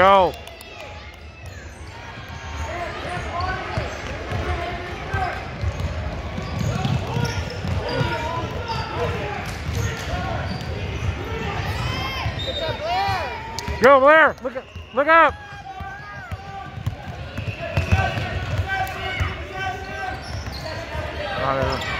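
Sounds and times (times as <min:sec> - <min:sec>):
basketball dribbling on hardwood: 0:05.6 - 0:08.2, 0:15.8 - 0:19.3.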